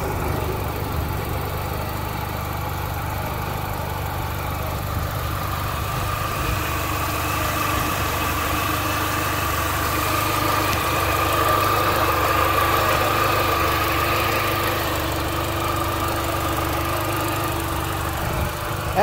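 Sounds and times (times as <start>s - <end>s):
car engine idling with whine: 0.0s - 19.0s.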